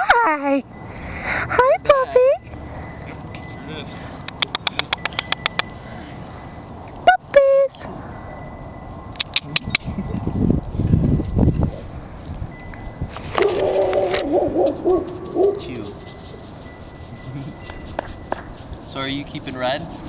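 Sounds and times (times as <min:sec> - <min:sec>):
sharp clicks: 0:04.2 - 0:05.7, 0:09.2 - 0:09.9
puppy whining: 0:13.4 - 0:18.6.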